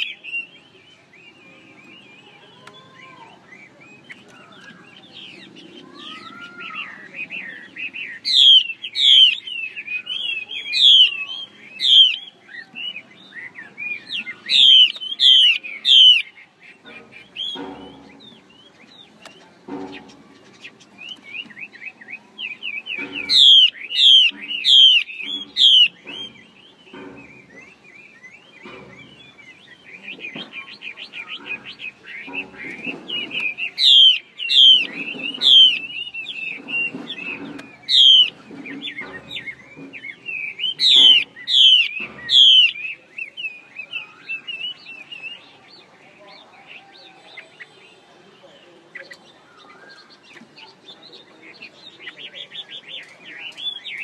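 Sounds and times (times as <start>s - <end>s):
quiet bird twittering: 0.0s - 54.0s.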